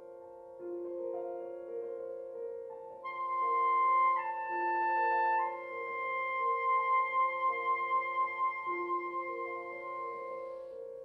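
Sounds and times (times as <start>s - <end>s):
piano accompaniment: 0.0s - 11.0s
soprano saxophone held notes: 3.0s - 10.4s.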